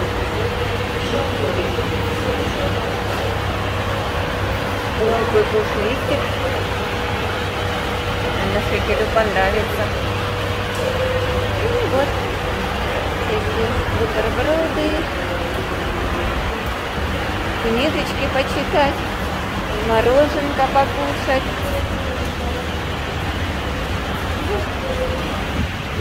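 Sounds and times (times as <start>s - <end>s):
bus station background rumble: 0.0s - 26.0s
low machine drone: 0.0s - 26.0s.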